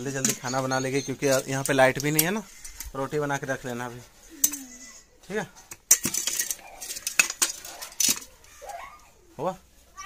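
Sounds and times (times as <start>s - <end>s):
steel dishes clinking: 0.0s - 2.3s, 5.9s - 8.3s.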